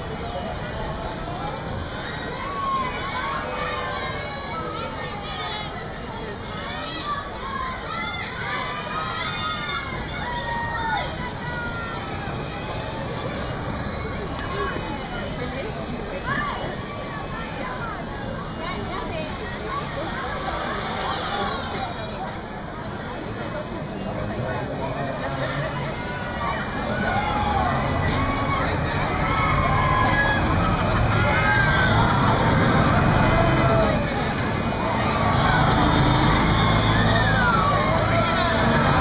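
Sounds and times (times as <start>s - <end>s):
low rumble of ride: 0.0s - 39.0s
riders shouting: 25.7s - 39.0s.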